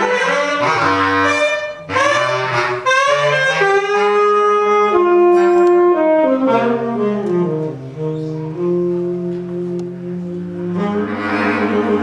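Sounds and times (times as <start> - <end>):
saxophone: 0.0 - 12.0.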